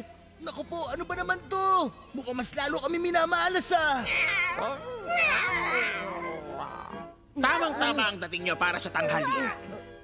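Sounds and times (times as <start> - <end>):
cartoon cat meowing: 4.0 - 6.9.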